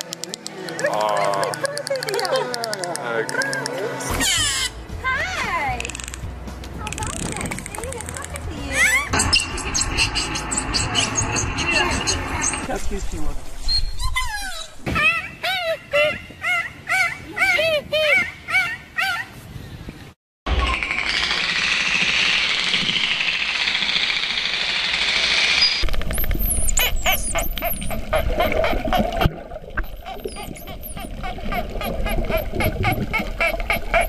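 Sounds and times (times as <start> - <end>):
dolphin clicks: 0.0 - 4.7, 5.7 - 9.2, 20.6 - 34.0
dolphin squeaky chirps: 3.3 - 6.2, 7.0 - 12.8, 13.6 - 19.3, 25.6 - 34.0
dolphin whistles: 8.7 - 12.7, 13.6 - 19.2, 25.6 - 29.0, 29.8 - 34.0.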